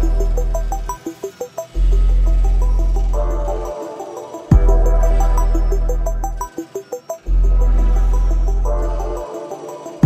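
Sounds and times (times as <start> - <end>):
deep sub-bass: 0.0 - 1.0, 1.8 - 3.8, 4.5 - 6.5, 7.3 - 9.3.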